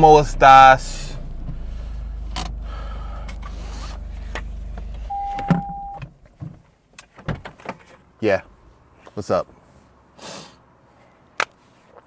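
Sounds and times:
car engine idling: 0:00.0 - 0:06.3.

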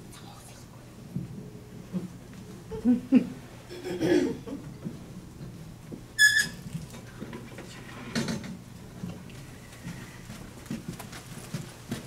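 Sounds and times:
low room noise: 0:00.0 - 0:12.0
high-pitched squeak: 0:06.2 - 0:06.6.

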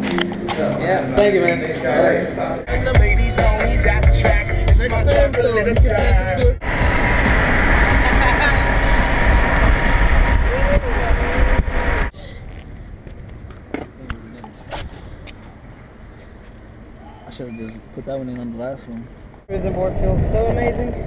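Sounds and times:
in-car hum: 0:02.7 - 0:12.3
car wind and road noise: 0:04.6 - 0:21.0.

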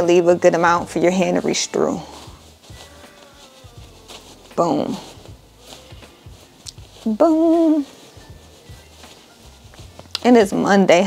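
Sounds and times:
satin fabric rustling: 0:00.0 - 0:11.0.

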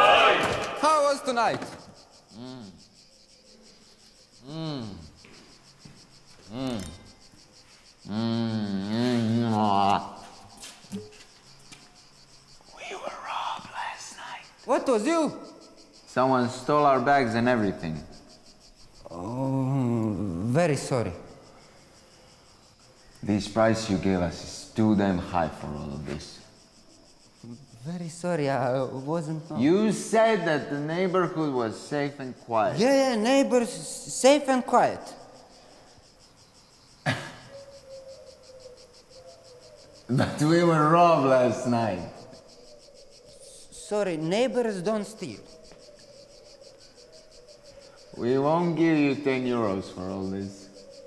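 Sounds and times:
insects chirping: 0:00.0 - 0:51.0
person whispering: 0:12.7 - 0:14.6.

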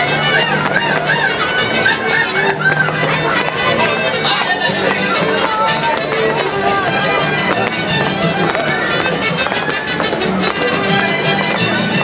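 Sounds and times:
folk dance music: 0:00.0 - 0:12.0.

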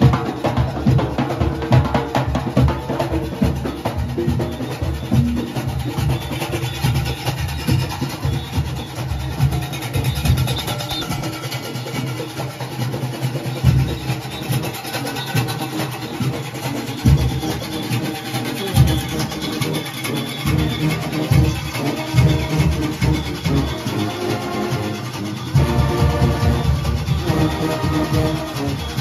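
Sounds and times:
cowbells: 0:00.0 - 0:29.0
drums beating: 0:00.0 - 0:29.0
horns playing: 0:14.2 - 0:29.0.

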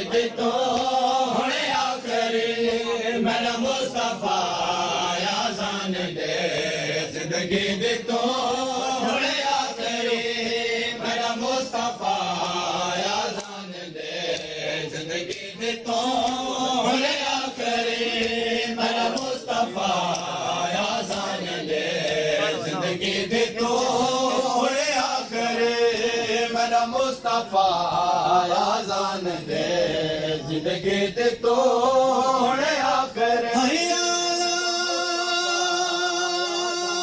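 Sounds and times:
men chanting over loudspeakers: 0:00.0 - 0:37.0.

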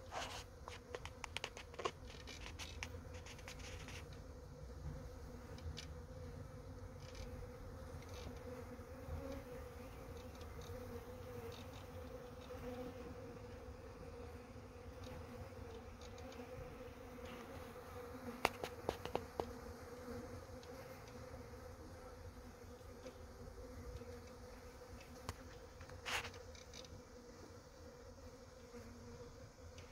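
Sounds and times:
honeybee swarm buzzing: 0:00.0 - 0:29.9.

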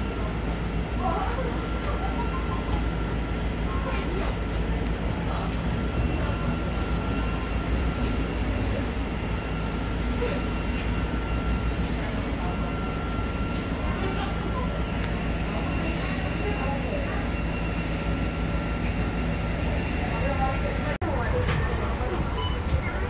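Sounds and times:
bus cabin low rumble: 0:00.0 - 0:23.0.

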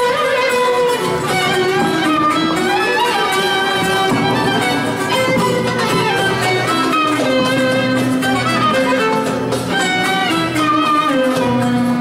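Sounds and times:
clarinet melody: 0:00.0 - 0:12.0
plucked strings: 0:00.0 - 0:12.0
violin melody: 0:00.0 - 0:12.0.

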